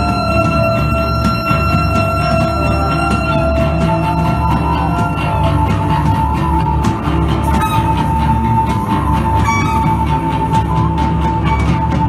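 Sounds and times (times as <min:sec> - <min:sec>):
high drone tone: 0:00.0 - 0:12.0
live band music: 0:00.0 - 0:12.0.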